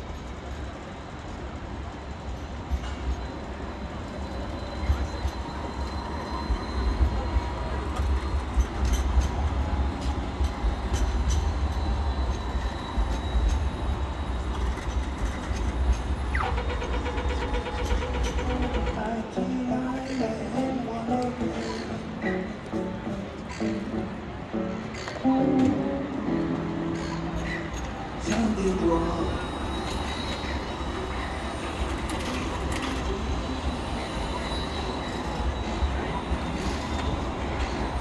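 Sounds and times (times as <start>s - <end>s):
tram passing: 0.0s - 38.0s.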